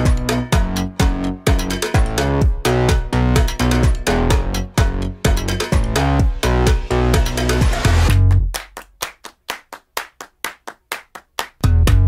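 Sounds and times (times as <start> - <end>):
electronic dance music: 0.0 - 8.5
hand-clap hits: 0.0 - 12.0.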